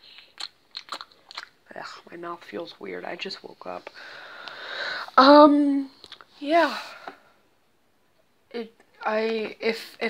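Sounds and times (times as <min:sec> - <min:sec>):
mouth clicks and lip smacks: 0:00.0 - 0:01.6, 0:06.0 - 0:06.3.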